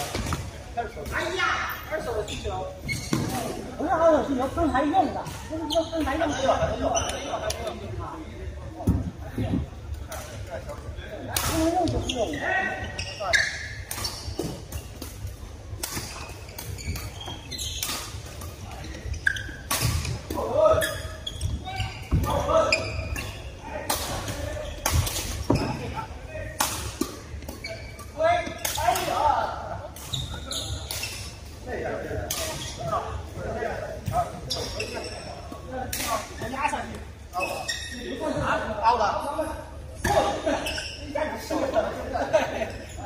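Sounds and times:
players chatting: 0.0 - 43.0.

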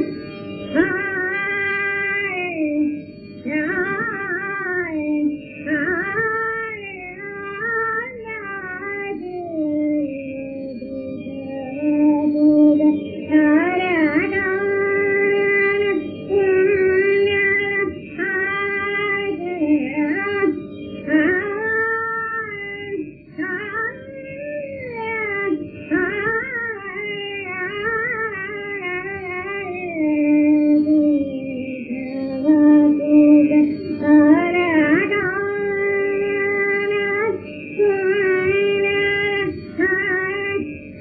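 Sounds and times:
woman singing without words: 0.0 - 40.7.

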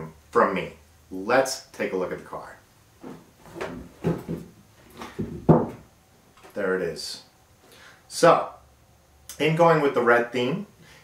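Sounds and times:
cardboard scraping on wood: 3.0 - 5.3
cardboard box knocking on wood: 5.1 - 5.8.

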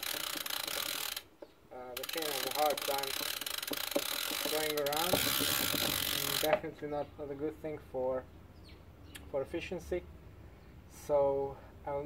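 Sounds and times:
bicycle chain ticking: 0.0 - 6.7.

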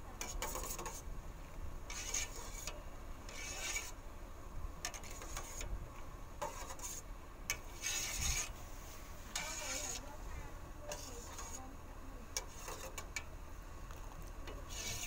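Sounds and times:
metal spoon scraping steel pot: 0.2 - 1.0, 1.9 - 3.9, 4.8 - 5.7, 6.4 - 8.5, 9.3 - 10.1, 10.9 - 11.6, 12.4 - 13.2, 14.5 - 15.0.

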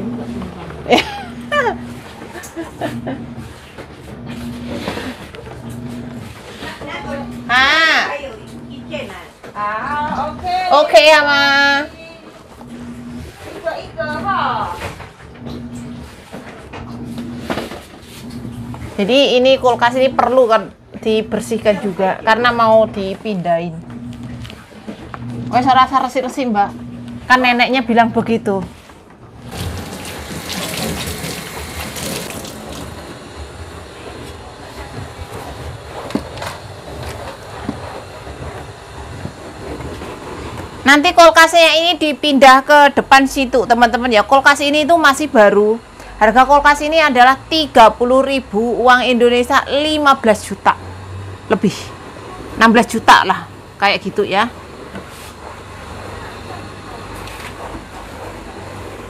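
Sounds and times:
refrigerator rumbling on floor: 28.1 - 33.4
cloth wiping refrigerator door: 28.7 - 32.9, 54.9 - 59.0.

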